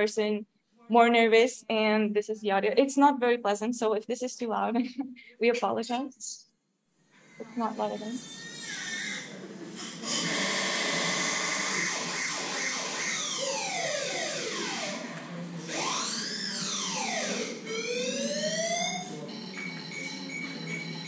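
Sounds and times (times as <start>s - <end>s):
steady high tone: 7.4s - 21.0s
siren-like sweeping tones: 9.8s - 21.0s.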